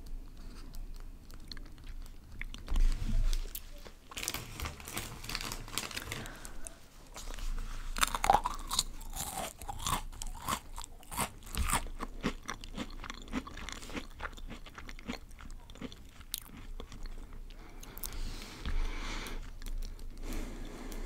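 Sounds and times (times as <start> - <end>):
crunchy snack chewing: 7.9 - 21.0.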